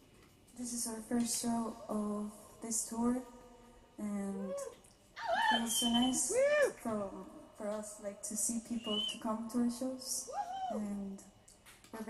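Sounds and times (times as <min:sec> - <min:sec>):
woman singing softly: 0:04.0 - 0:04.8, 0:05.5 - 0:11.3.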